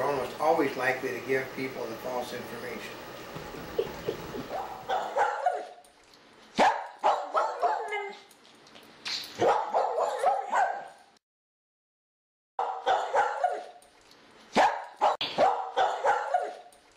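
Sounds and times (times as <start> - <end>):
dog barking and yipping: 3.9 - 5.9, 6.5 - 8.3, 9.3 - 11.1, 12.6 - 13.8, 14.5 - 16.7.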